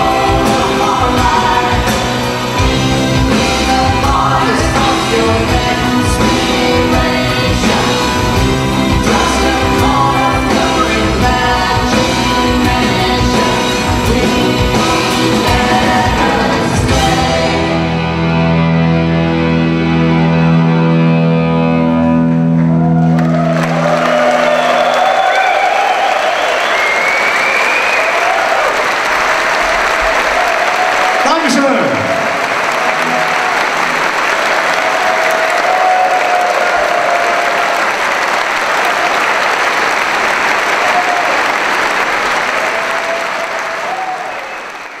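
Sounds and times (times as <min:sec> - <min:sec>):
audience applauding and cheering: 0:00.0 - 0:18.7, 0:22.0 - 0:45.0.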